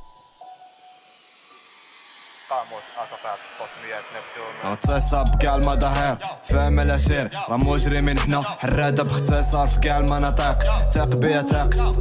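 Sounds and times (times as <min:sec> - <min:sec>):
piano: 0:00.0 - 0:03.0
person rapping: 0:02.5 - 0:12.0
heavy deep bass beat: 0:04.8 - 0:12.0.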